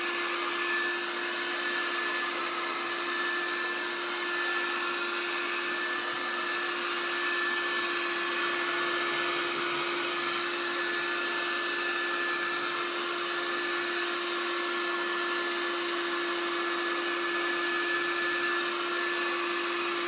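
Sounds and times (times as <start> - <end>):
hair dryer running: 0.0 - 20.0.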